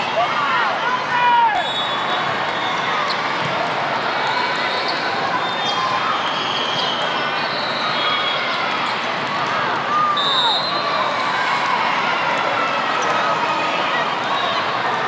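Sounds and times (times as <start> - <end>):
din of crowd voices: 0.0 - 15.0.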